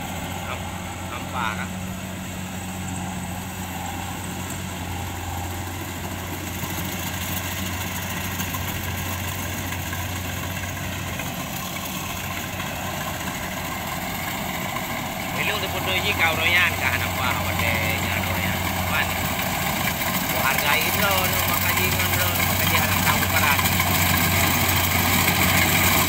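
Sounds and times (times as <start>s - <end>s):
combine harvester engine drone: 0.0s - 26.0s.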